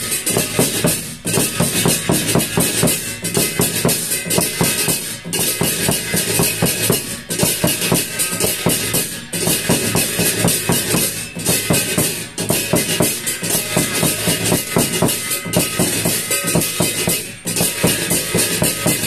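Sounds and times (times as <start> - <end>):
bright metallic jingling: 0.0 - 19.0
fast steady drumming: 0.0 - 19.0.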